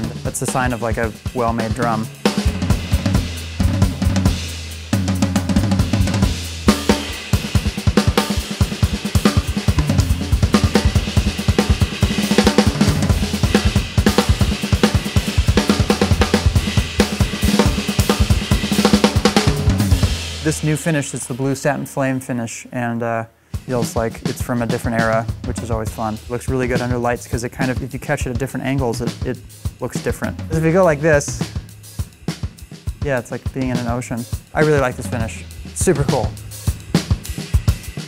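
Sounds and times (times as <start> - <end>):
ride cymbal wash: 0.0 - 21.8, 34.1 - 38.0
drum kit playing: 0.0 - 22.4, 23.6 - 38.0.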